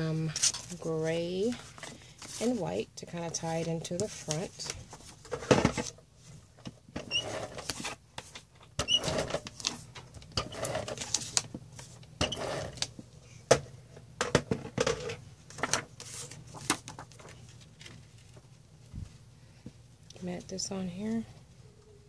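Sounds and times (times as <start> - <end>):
paper shuffling and rustling: 0.2 - 8.5, 9.1 - 12.0, 15.5 - 19.2.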